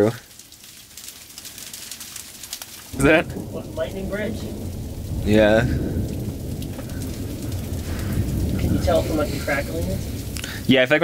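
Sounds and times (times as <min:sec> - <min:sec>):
hard rain on rocks: 0:00.0 - 0:11.0.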